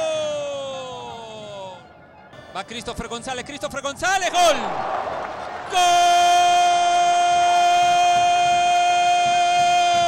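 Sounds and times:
commentator shouting goal: 0:02.7 - 0:10.0.

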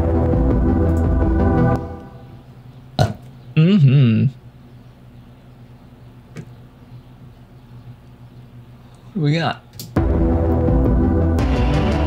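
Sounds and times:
man's wordless vocal noise: 0:03.6 - 0:04.4.

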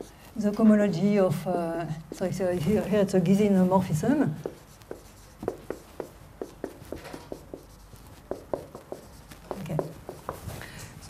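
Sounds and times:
chalk tapping on board: 0:04.2 - 0:10.6.

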